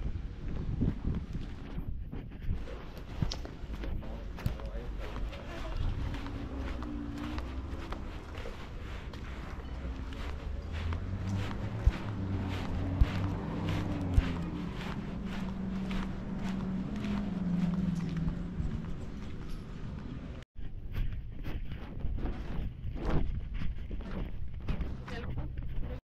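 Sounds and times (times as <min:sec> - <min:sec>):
footsteps on concrete: 0:00.0 - 0:26.0.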